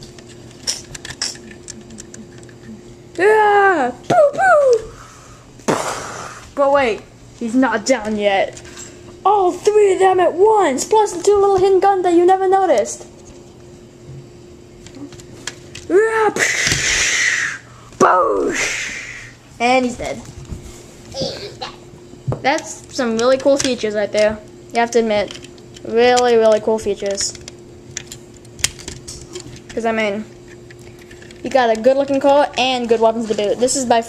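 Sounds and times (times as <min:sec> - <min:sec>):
child's vocal call: 0:03.2 - 0:05.1, 0:15.9 - 0:19.4.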